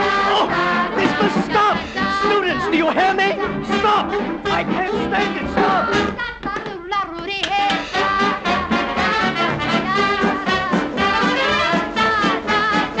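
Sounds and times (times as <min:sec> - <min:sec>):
swing band with brass: 0:00.0 - 0:06.2, 0:07.7 - 0:13.0.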